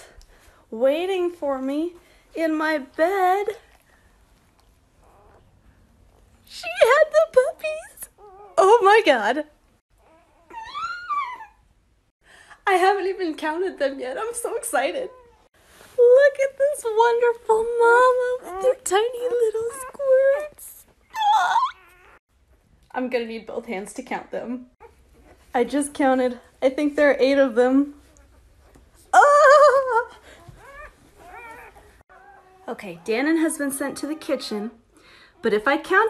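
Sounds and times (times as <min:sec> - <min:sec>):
dog whining: 0:08.1 - 0:08.7, 0:10.0 - 0:11.7, 0:21.0 - 0:22.2, 0:30.3 - 0:32.7
woman crying and whimpering: 0:29.2 - 0:30.5.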